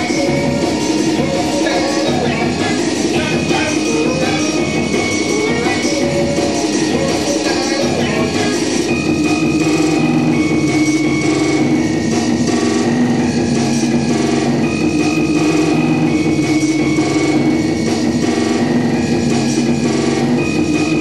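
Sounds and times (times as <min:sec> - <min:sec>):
loud noise rock: 0:00.0 - 0:21.0.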